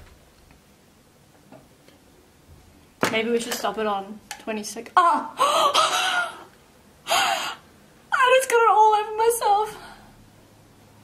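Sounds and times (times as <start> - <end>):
woman gasping: 5.4 - 6.5, 7.1 - 7.6
woman exclaiming: 8.1 - 9.8.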